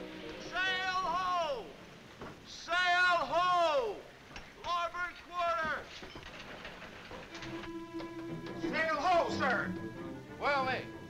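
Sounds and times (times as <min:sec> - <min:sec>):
soft film score: 0:00.0 - 0:03.3, 0:06.8 - 0:11.0.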